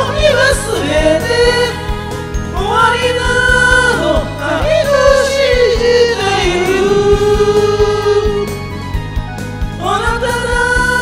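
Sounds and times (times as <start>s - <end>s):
people singing into microphones: 0.0s - 9.0s, 9.8s - 11.0s
karaoke backing track with beat: 0.0s - 11.0s.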